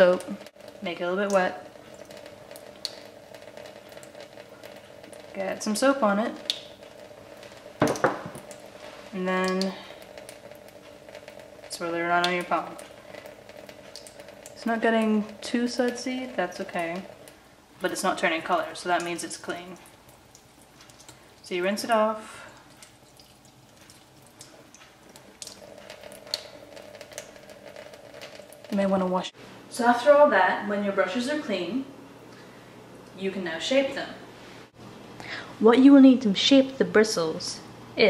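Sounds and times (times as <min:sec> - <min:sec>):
water running from a tap: 0:00.0 - 0:29.8.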